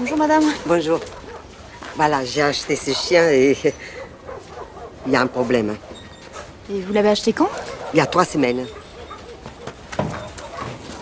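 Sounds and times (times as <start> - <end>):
puppy whimpering and yipping: 7.6 - 10.8.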